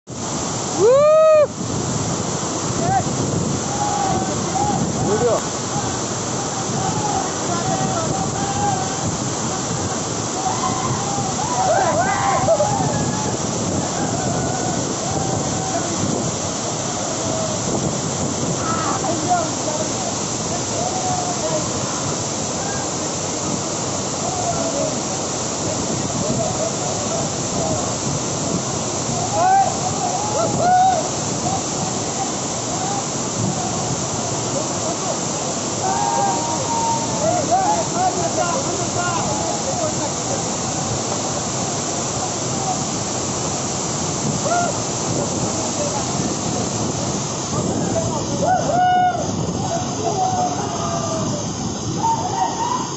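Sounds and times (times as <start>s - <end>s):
water rushing over boulders: 0.1s - 52.9s.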